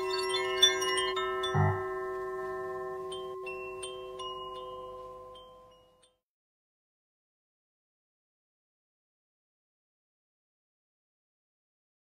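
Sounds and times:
chimes ringing: 0:00.0 - 0:06.2.

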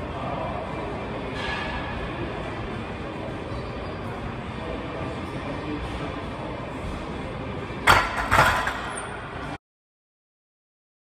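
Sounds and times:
gym background noise: 0:00.0 - 0:09.6.

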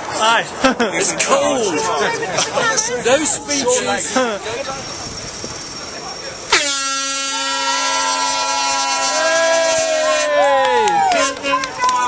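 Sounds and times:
air horn blast: 0:06.5 - 0:10.4
people shouting: 0:07.2 - 0:12.0.

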